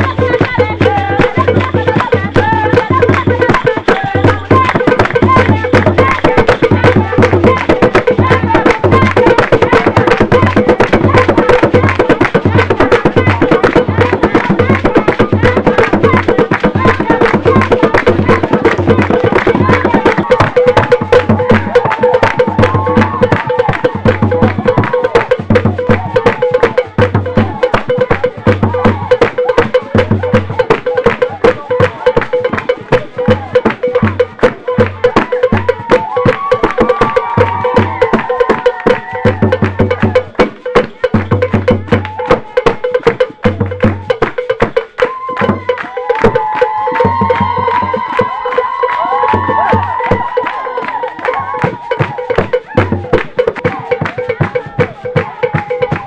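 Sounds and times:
voices singing: 0:00.0 - 0:44.2
percussion music with drums: 0:00.0 - 0:56.0
wood block beat: 0:00.0 - 0:56.0.

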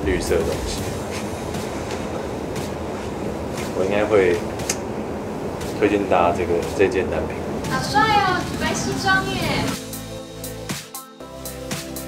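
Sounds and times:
low rumbling hum: 0:00.0 - 0:09.8.

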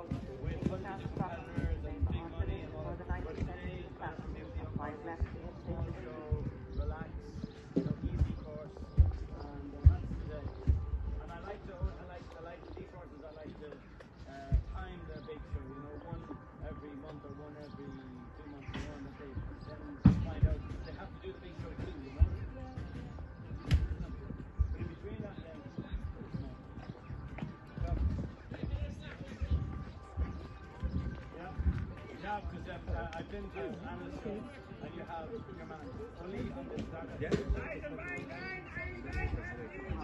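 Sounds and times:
dull low thuds: 0:00.0 - 0:40.0
horse hoofbeats on sand: 0:00.0 - 0:40.0
people talking faintly: 0:00.0 - 0:40.0.

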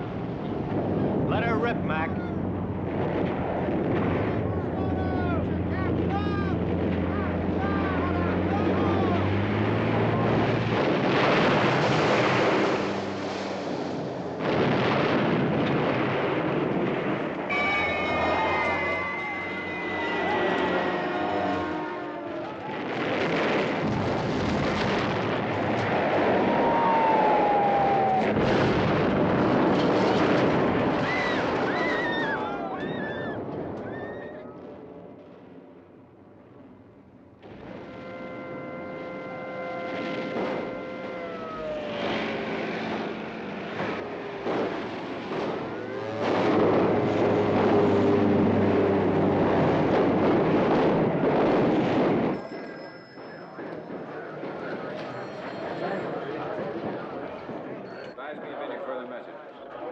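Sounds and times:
aircraft: 0:00.0 - 0:17.6, 0:29.0 - 0:58.8
explosions: 0:00.5 - 0:21.6, 0:22.3 - 0:36.7, 0:37.4 - 0:52.6
low drone: 0:17.4 - 0:23.0, 0:34.6 - 0:50.9
falling whistle: 0:17.5 - 0:22.4, 0:31.0 - 0:34.6, 0:37.8 - 0:42.5
people shouting: 0:17.5 - 0:22.8, 0:26.4 - 0:28.6, 0:31.0 - 0:34.4, 0:38.4 - 0:43.3.

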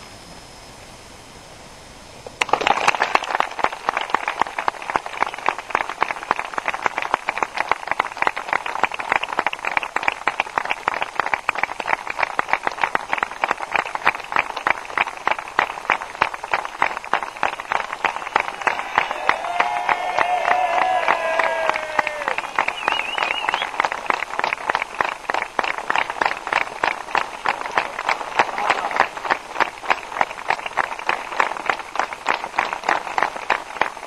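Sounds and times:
spectators applauding: 0:02.4 - 0:34.0.

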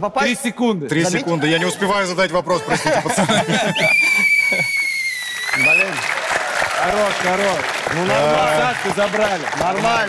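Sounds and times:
long whistle blast: 0:03.6 - 0:06.1.

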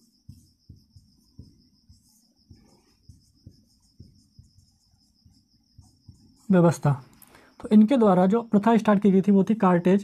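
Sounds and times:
marker tapping on whiteboard: 0:00.0 - 0:07.0
marker scraping on whiteboard: 0:00.0 - 0:07.2
high pulsing chirr: 0:00.0 - 0:07.5.

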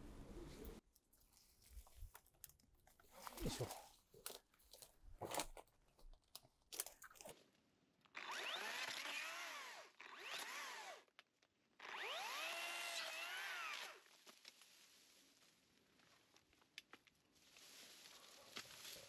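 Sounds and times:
chainsaw cutting bamboo: 0:08.1 - 0:11.1, 0:11.7 - 0:14.1
brush crackling and snapping: 0:14.0 - 0:19.0.

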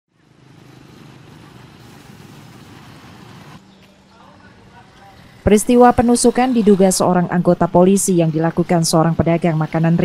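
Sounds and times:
vehicle engine running: 0:00.1 - 0:07.5
road noise: 0:00.1 - 0:10.0.

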